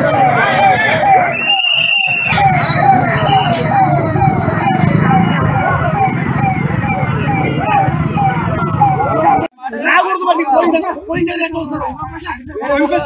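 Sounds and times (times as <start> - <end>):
siren yelping: 0.0 - 9.5
crowd chatter: 0.0 - 13.0.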